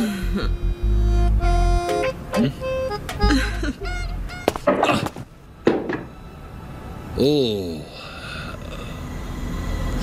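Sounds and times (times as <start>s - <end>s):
background music: 0.0s - 4.4s
man falling on stairs: 4.4s - 6.1s.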